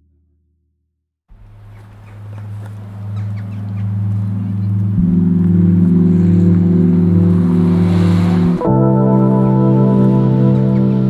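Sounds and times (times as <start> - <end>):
slow ambient music: 1.4 - 11.0.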